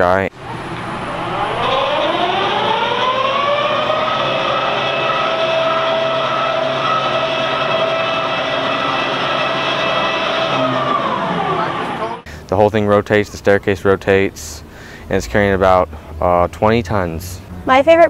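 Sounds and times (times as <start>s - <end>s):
radar electric drive whine: 0.0s - 14.7s.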